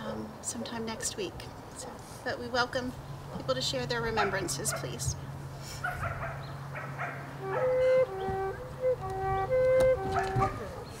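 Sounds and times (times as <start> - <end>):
faint dog barking: 4.2 - 5.0, 5.8 - 7.9
slow melody of held notes: 7.4 - 10.9.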